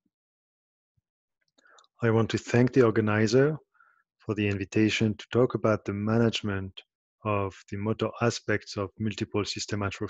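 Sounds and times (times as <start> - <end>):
mouth sounds: 2.0 - 3.5, 4.3 - 10.0.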